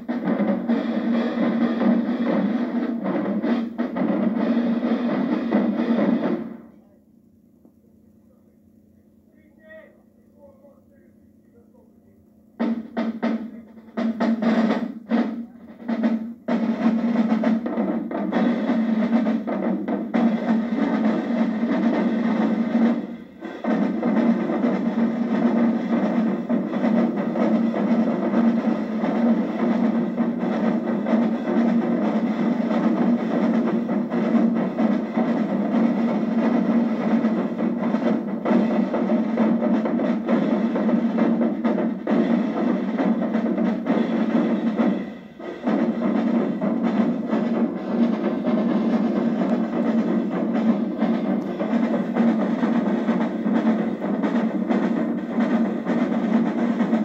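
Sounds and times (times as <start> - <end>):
snare drums marching: 0.0 - 6.8, 12.5 - 57.0.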